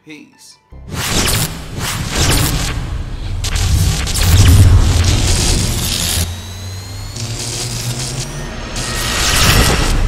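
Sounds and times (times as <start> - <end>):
low steady drone: 2.2 - 10.0
faint rising high whine: 2.5 - 10.0.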